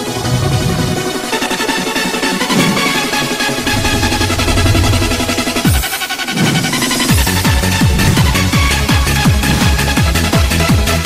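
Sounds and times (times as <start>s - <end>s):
bass tone sliding down: 3.5s - 5.8s.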